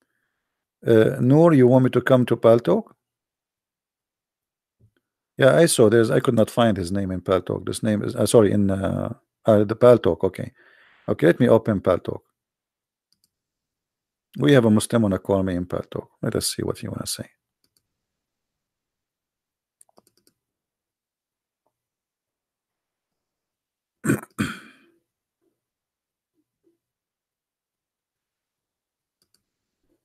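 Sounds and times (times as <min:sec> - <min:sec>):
computer mouse clicks: 0:13.1 - 0:13.4, 0:17.6 - 0:17.9, 0:19.8 - 0:20.4, 0:29.2 - 0:29.4
man clearing his throat: 0:24.0 - 0:25.0.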